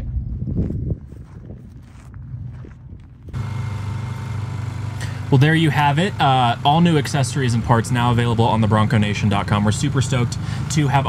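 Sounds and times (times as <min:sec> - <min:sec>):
low motor drone: 0:02.1 - 0:11.0.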